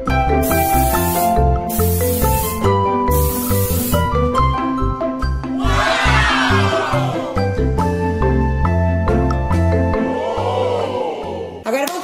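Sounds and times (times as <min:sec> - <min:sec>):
background music: 0:00.0 - 0:12.0
aerosol spray hissing: 0:00.4 - 0:04.2.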